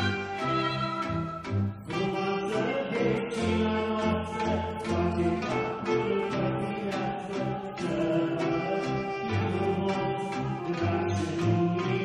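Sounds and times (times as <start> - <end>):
violins playing tune: 0.0 - 12.0.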